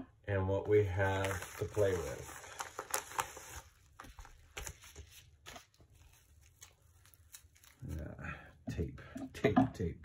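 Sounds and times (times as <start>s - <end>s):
bubble wrap crinkling: 0.8s - 8.2s.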